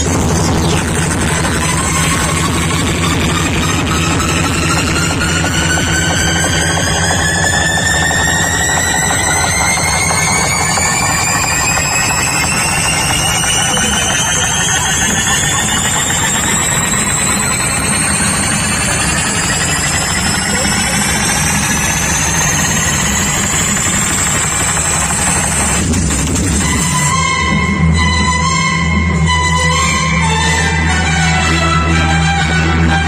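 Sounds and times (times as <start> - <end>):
electronic rising sweep: 0.0 - 31.8
deep bass: 0.0 - 33.0.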